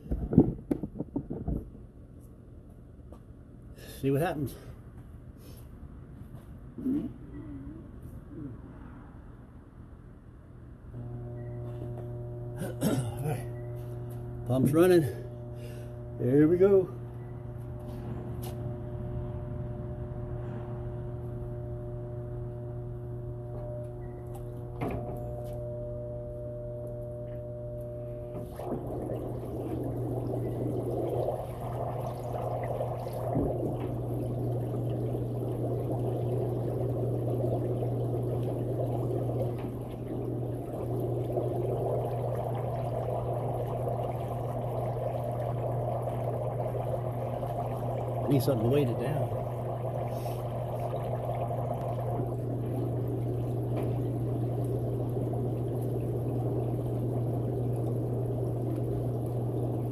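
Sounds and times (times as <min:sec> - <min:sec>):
electric air pump humming: 0:11.0 - 0:59.9
water bubbling and churning: 0:28.3 - 0:59.9.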